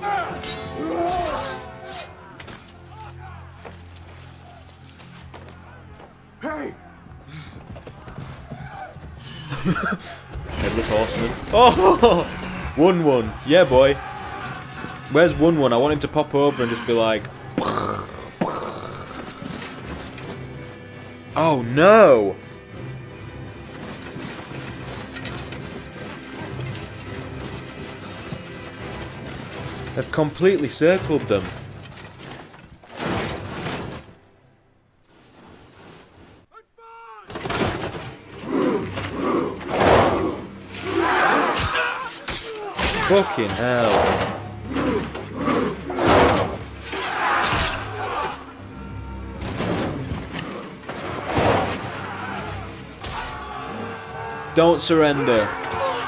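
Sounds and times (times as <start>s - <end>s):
battle clashing and clamour: 0.0s - 34.2s, 36.6s - 56.0s
low orchestral score: 0.0s - 34.5s, 37.6s - 56.0s
clanking armour and weapons: 8.3s - 20.6s, 23.6s - 34.2s, 37.3s - 48.5s, 49.3s - 56.0s.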